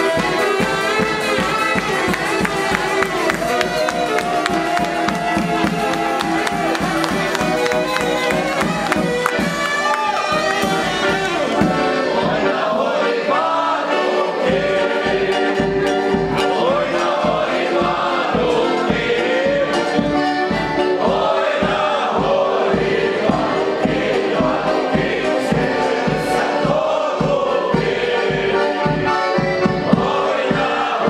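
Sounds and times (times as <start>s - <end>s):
folk band playing: 0.0s - 31.0s
voices singing: 10.4s - 31.0s.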